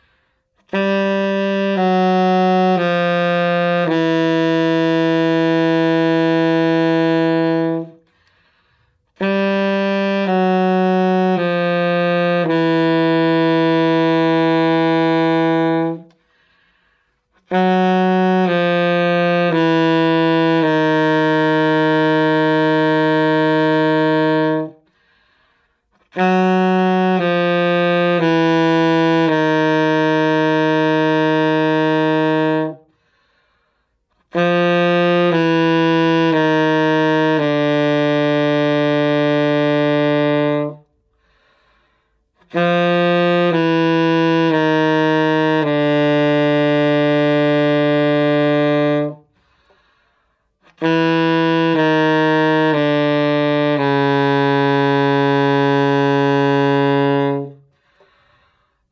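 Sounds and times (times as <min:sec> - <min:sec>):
alto saxophone low notes: 0:00.0 - 0:58.9.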